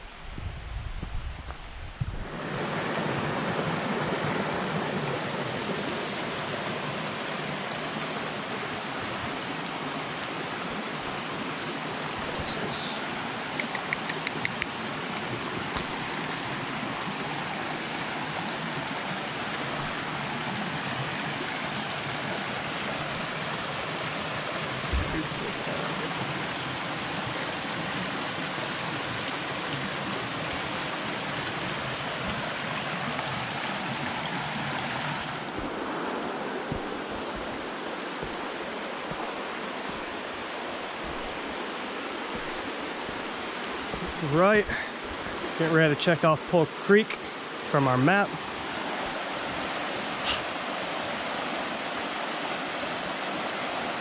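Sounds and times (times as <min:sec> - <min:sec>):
creek rushing over rocks: 0:00.0 - 0:54.0
brief thump: 0:24.9 - 0:25.2.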